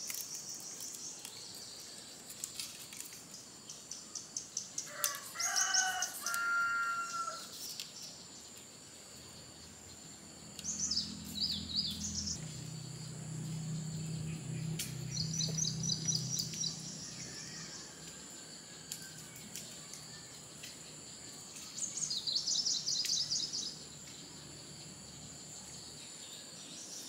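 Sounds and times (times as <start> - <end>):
songbird chirps and trills: 0.0 - 27.0.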